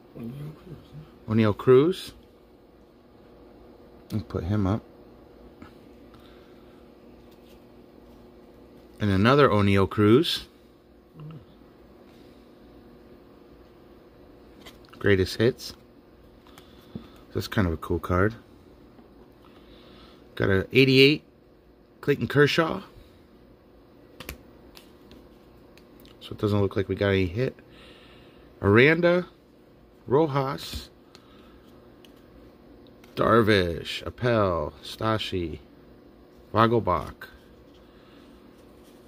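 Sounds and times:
low steady hum: 0:00.0 - 0:39.0
cards sliding and ticking: 0:24.2 - 0:26.1, 0:30.6 - 0:32.3.

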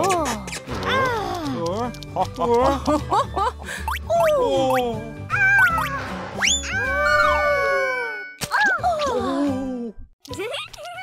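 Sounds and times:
cartoon music: 0:03.8 - 0:09.4.

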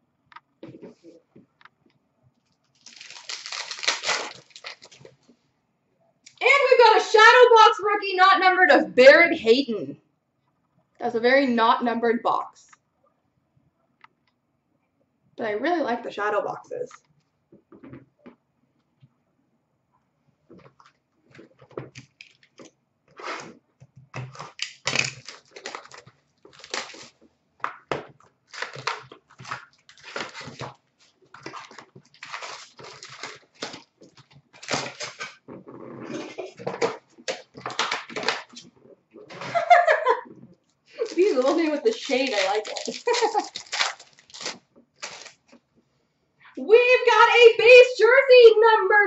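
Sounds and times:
plastic wrappers crinkling and tearing: 0:02.5 - 0:05.3, 0:20.6 - 0:22.7, 0:24.3 - 0:27.2, 0:28.4 - 0:35.4, 0:36.3 - 0:38.7, 0:41.0 - 0:45.6
trading cards rustling: 0:02.8 - 0:05.1, 0:31.3 - 0:33.9, 0:41.0 - 0:45.5
cards being shuffled: 0:41.0 - 0:45.5.

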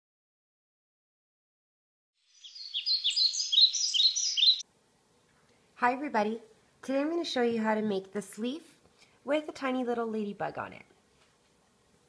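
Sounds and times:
birds chirping: 0:02.2 - 0:04.6.

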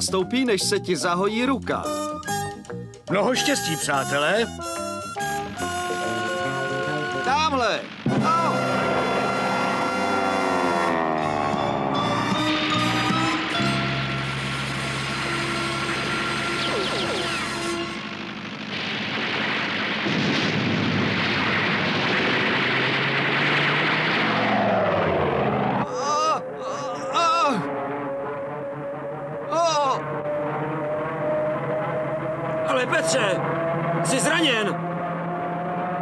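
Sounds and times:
music: 0:00.0 - 0:18.1
warplane engine drones: 0:04.7 - 0:36.0
machine-gun fire: 0:07.9 - 0:10.3, 0:12.5 - 0:25.8.

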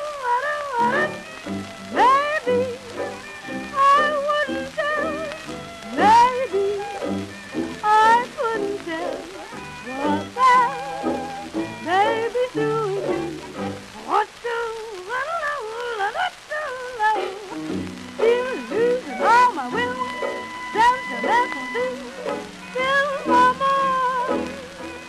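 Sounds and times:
early jazz dance-band music: 0:00.0 - 0:25.0
record surface crackle and clicks: 0:00.0 - 0:25.0.

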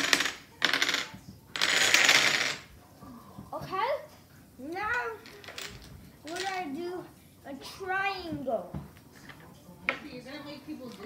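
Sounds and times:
dominoes toppling on wooden table: 0:00.0 - 0:02.7, 0:05.2 - 0:06.7.

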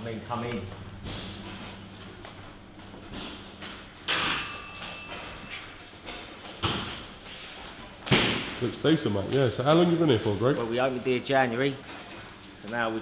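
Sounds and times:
loud metallic clang: 0:00.7 - 0:05.5.

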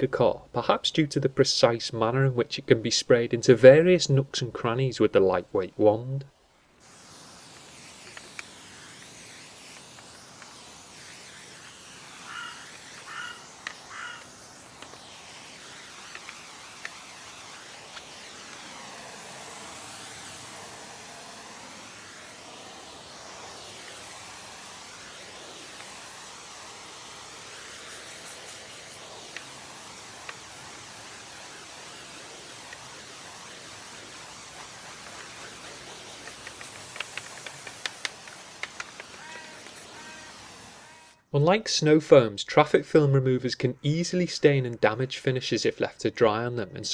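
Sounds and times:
pump sprayer hissing: 0:06.8 - 0:41.2
light clicks: 0:36.2 - 0:39.2.

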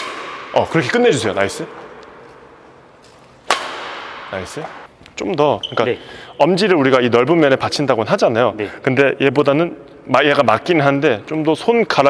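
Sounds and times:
racket striking shuttlecock: 0:00.0 - 0:01.0, 0:03.3 - 0:04.9.

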